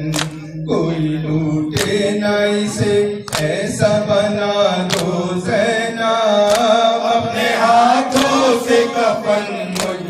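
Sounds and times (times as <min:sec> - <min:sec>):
men chanting a lament: 0:00.0 - 0:10.0
sharp slap: 0:00.1 - 0:00.4, 0:01.8 - 0:02.0, 0:03.3 - 0:03.6, 0:04.9 - 0:05.2, 0:06.4 - 0:06.8.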